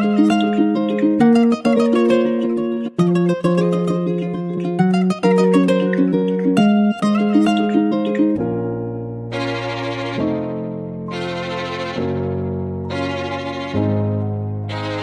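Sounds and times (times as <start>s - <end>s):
plucked guitar playing: 0.0s - 15.0s.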